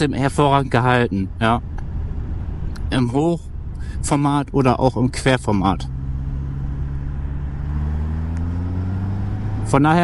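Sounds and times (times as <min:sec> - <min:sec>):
motorcycle engine running: 0:05.2 - 0:10.0.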